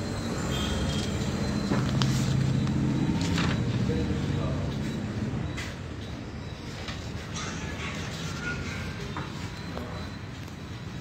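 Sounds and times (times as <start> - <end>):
paper rustling: 1.8 - 3.7.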